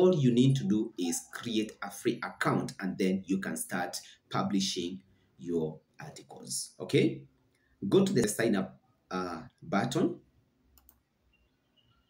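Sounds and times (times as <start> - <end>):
computer mouse clicking: 10.7 - 11.1.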